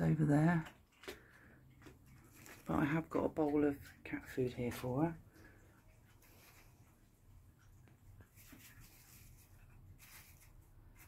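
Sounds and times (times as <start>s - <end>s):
soft hissy rustles: 4.5s - 11.0s.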